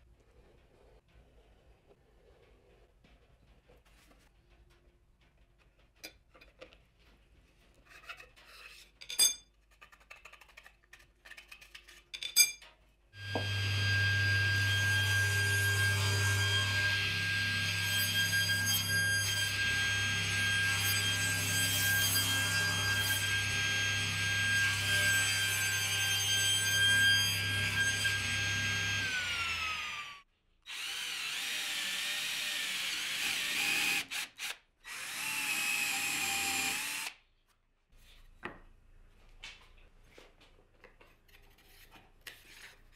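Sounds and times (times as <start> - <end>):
power tool running: 13.2 - 15.2
table saw running: 13.2 - 33.7.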